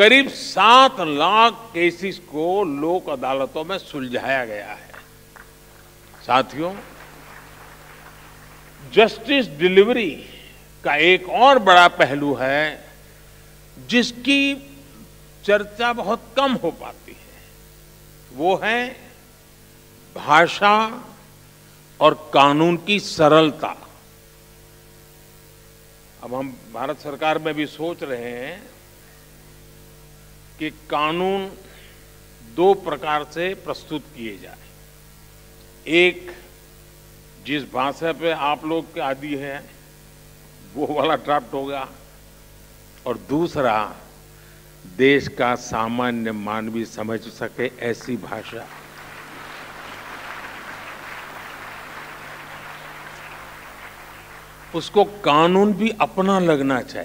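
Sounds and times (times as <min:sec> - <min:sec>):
electrical mains hum: 0:00.0 - 0:57.0
faint hiss: 0:00.0 - 0:57.0
audience applauding: 0:04.9 - 0:09.3, 0:48.5 - 0:55.0.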